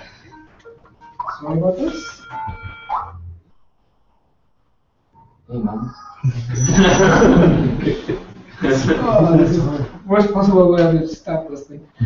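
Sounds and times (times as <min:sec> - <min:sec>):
person laughing: 0:06.2 - 0:09.4.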